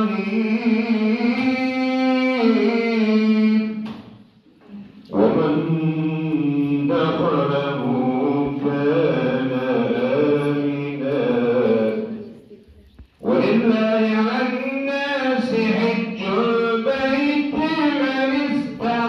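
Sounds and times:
men chanting: 0:05.1 - 0:12.3, 0:13.2 - 0:19.0.

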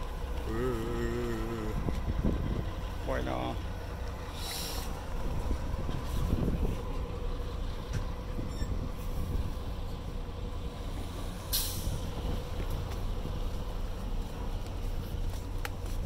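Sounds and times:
engine whine: 0:00.0 - 0:16.0
forklift engine running under load: 0:00.0 - 0:16.0
short bursts of hiss: 0:04.3 - 0:04.9.

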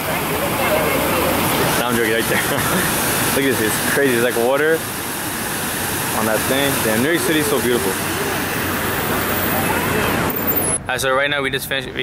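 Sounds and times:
hubbub of passers-by: 0:00.0 - 0:12.0
street traffic: 0:00.0 - 0:12.0.

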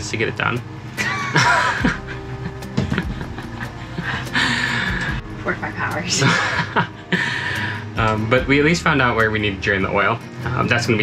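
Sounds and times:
background music: 0:00.0 - 0:11.0
man laughing: 0:01.0 - 0:04.9, 0:06.2 - 0:07.5.

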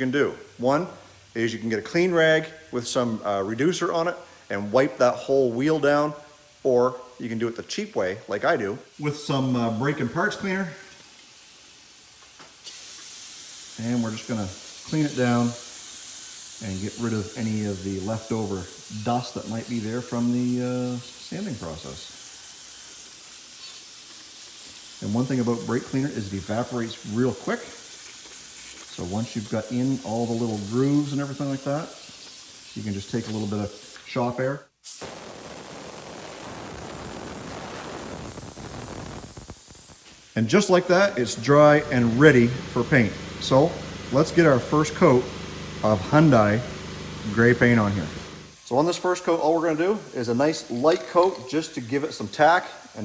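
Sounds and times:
compressed air hissing: 0:08.8 - 0:53.0
aerosol can spraying: 0:11.0 - 0:34.2, 0:34.8 - 0:53.0.

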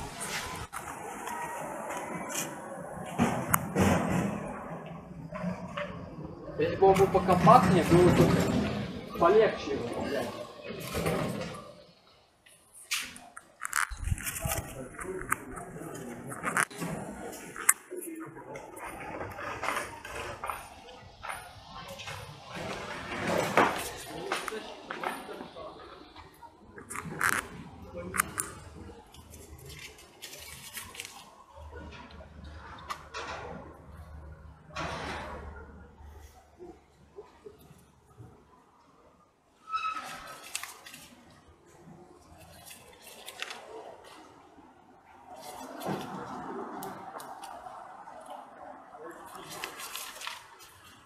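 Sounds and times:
paper rustling and crumpling: 0:13.0 - 0:17.8, 0:29.1 - 0:31.4, 0:40.1 - 0:41.3, 0:42.4 - 0:44.2, 0:49.3 - 0:51.0.

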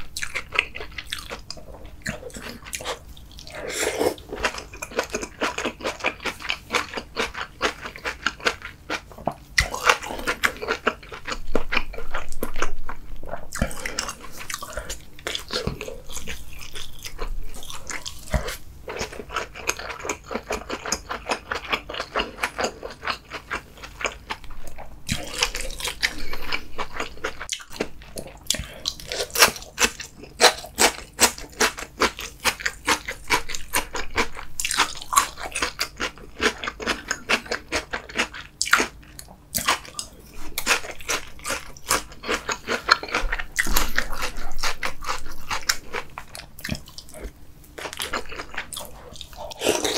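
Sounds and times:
person chewing food: 0:00.0 - 0:49.9.

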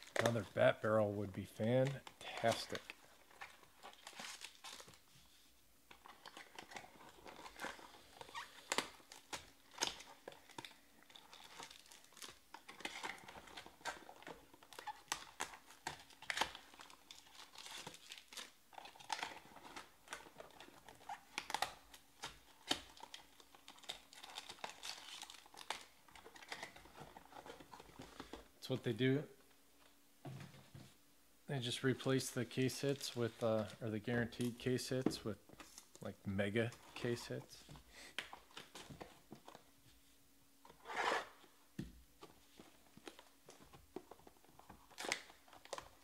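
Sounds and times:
packaging crinkling: 0:01.7 - 0:05.1, 0:05.9 - 0:28.8, 0:42.5 - 0:46.0.

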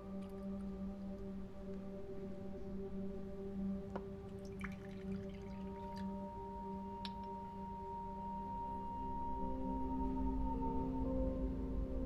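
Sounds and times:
faint light clicks: 0:07.0 - 0:07.4.

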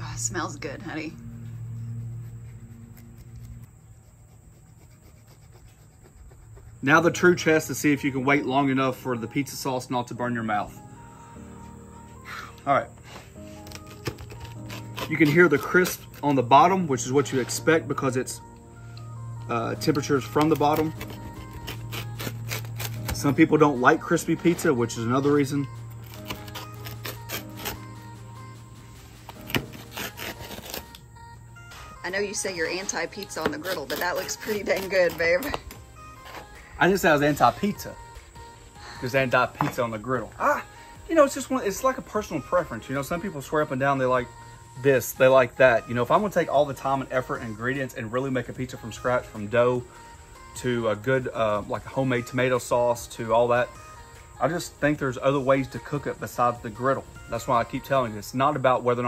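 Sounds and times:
background music: 0:00.0 - 0:04.4, 0:06.7 - 0:59.0
low steady hum: 0:00.0 - 0:06.9
cheese grater rasping: 0:13.6 - 0:16.3, 0:20.5 - 0:23.3, 0:26.0 - 0:27.8, 0:29.4 - 0:31.0
pizza wheel cutting crust: 0:13.6 - 0:16.7, 0:19.9 - 0:27.9, 0:29.3 - 0:31.0, 0:33.2 - 0:36.5.

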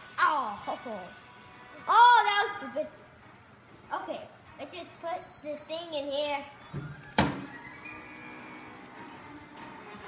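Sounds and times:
faint music with held notes: 0:00.0 - 0:10.0.

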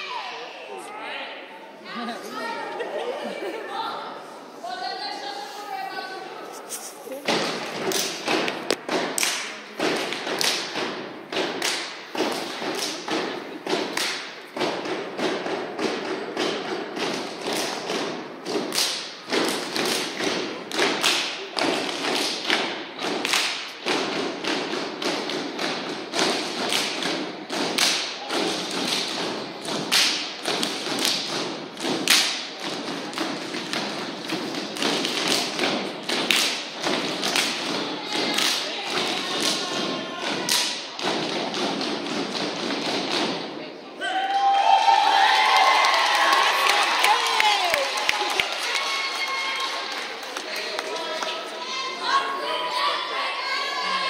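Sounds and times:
rhythmic clapping: 0:06.6 - 0:43.6, 0:45.2 - 0:51.8.

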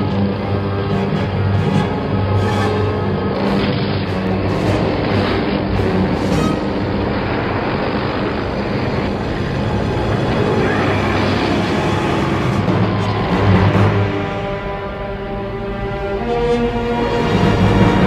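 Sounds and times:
booming impacts: 0:00.0 - 0:15.9
dramatic orchestral music: 0:00.0 - 0:18.0
rumble of vehicle noise: 0:00.0 - 0:18.0.

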